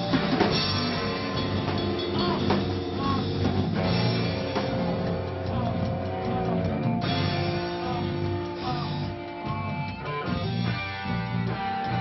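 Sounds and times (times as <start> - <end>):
loud live rock band: 0.0 - 12.0.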